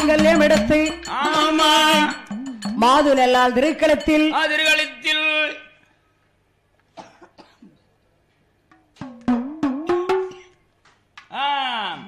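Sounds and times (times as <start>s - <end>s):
throat clearing sound: 6.9s - 7.9s, 10.2s - 10.6s.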